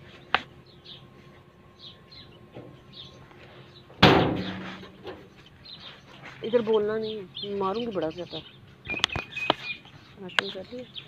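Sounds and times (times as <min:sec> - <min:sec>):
door slamming: 0:04.0 - 0:04.9.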